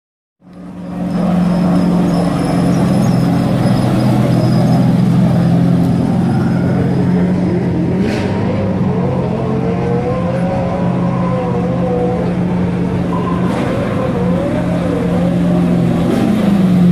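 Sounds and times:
second car's higher engine: 0.4s - 16.9s
race car engine passing: 0.5s - 16.9s.

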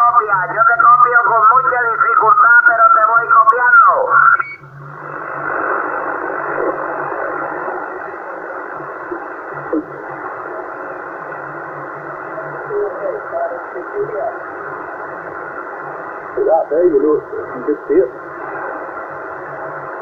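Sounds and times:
radio static hiss: 0.0s - 20.0s
garbled distant voices on radio: 12.5s - 14.5s, 16.3s - 18.8s.

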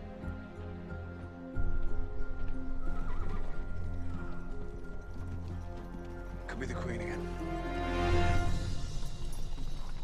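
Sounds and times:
background score music: 0.0s - 10.0s
horse hooves clip-clopping: 0.2s - 10.0s.

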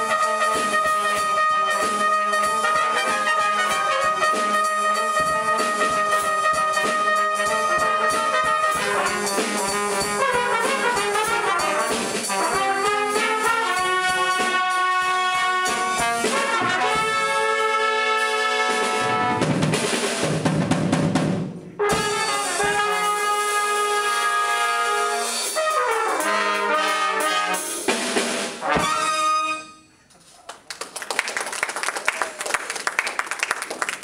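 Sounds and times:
trumpet ensemble playing chords: 0.0s - 19.7s, 21.6s - 29.9s.

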